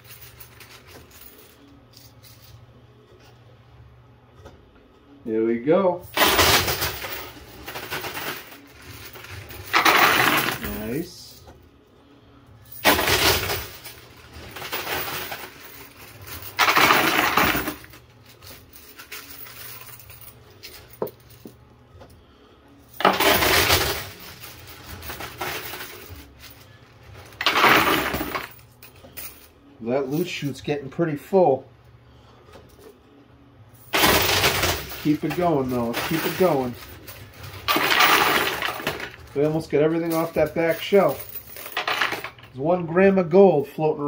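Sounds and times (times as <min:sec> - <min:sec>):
coins clattering in arcade machine: 0:00.0 - 0:02.7, 0:06.0 - 0:11.5, 0:12.6 - 0:21.6, 0:22.8 - 0:30.6, 0:33.8 - 0:42.6.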